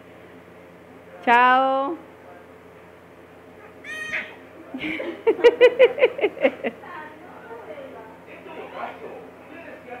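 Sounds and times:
baby squealing: 3.7 - 4.4.

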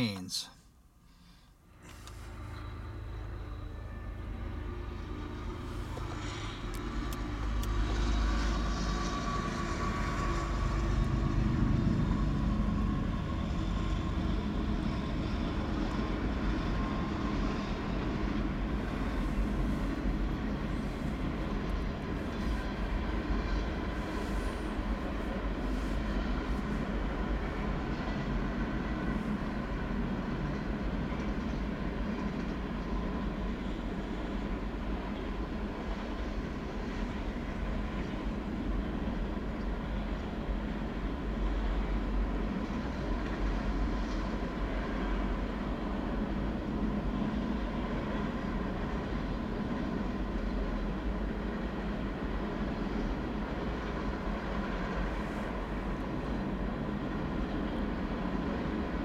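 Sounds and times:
diesel locomotives passing: 1.5 - 59.0.

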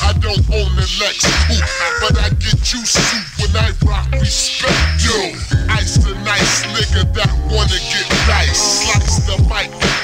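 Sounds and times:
slowed-down rap over bass beat: 0.0 - 10.0.

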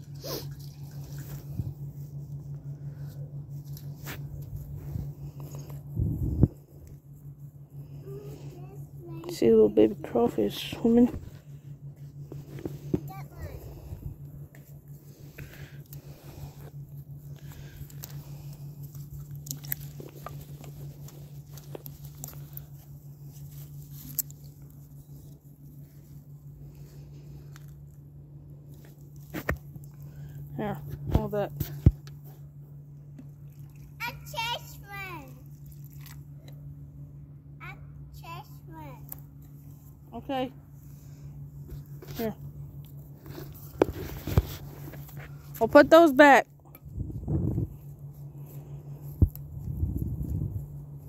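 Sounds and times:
steady low hum: 0.0 - 51.0
child's high-pitched voice: 8.0 - 9.3, 13.0 - 13.8, 34.0 - 35.5, 37.6 - 39.1.

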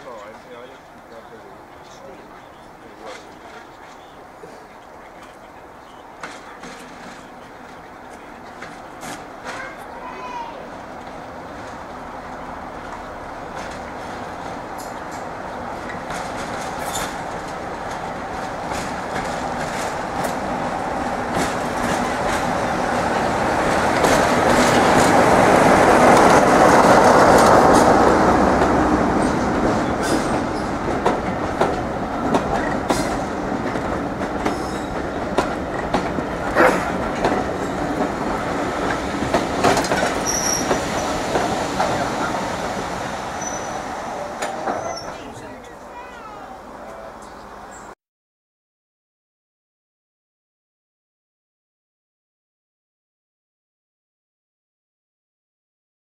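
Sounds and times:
diesel locomotive engine: 0.0 - 48.0
wheels clicking over rail joints: 0.1 - 20.5, 23.6 - 43.7
high squeal of train brakes: 16.8 - 17.2, 40.2 - 41.2, 43.4 - 43.9, 44.7 - 45.3.

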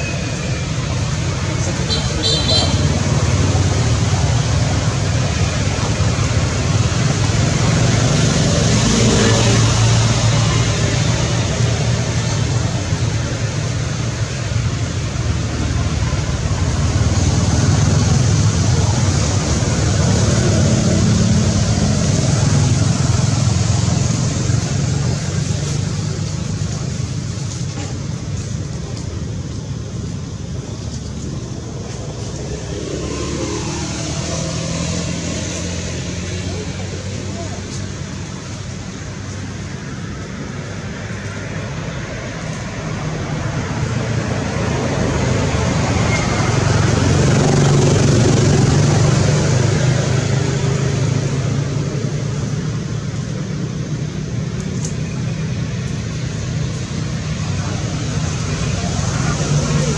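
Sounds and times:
road traffic rumble: 0.0 - 59.9.

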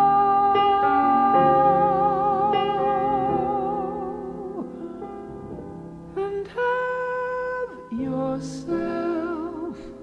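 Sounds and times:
woman singing jazz: 0.0 - 5.0
sustained piano notes: 0.0 - 10.0.

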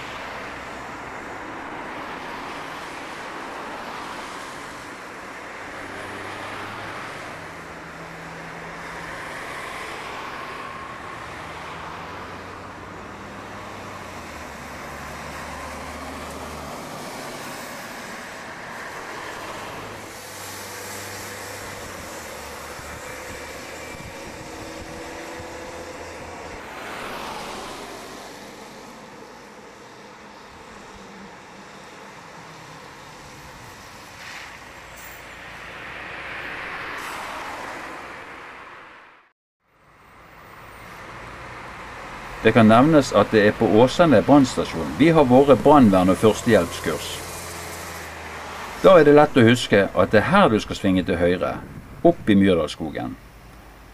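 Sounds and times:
cars passing: 0.0 - 53.9.

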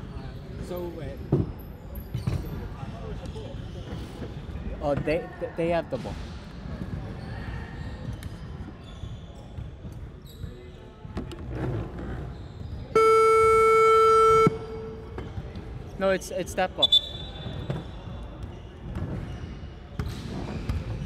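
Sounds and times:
game buzzer horn: 13.0 - 15.2.

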